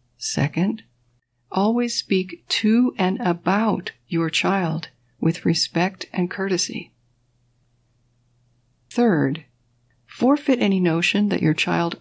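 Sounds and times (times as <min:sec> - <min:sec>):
woman speaking: 0:00.2 - 0:00.9, 0:01.5 - 0:07.0, 0:08.9 - 0:12.0.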